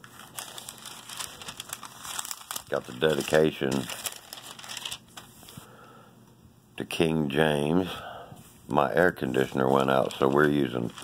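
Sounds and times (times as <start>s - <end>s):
thin paper pages rustling: 0.0s - 5.6s, 9.4s - 11.0s.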